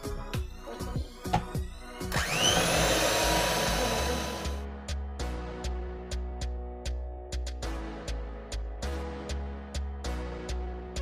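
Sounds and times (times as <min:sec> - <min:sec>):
music with a steady beat: 0:00.0 - 0:11.0
electric hand mixer whining: 0:02.1 - 0:04.6.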